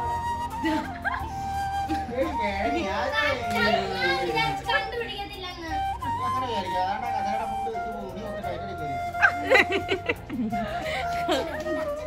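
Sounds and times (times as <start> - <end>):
background music held note: 0.0 - 12.0
children talking and calling out: 0.6 - 7.0.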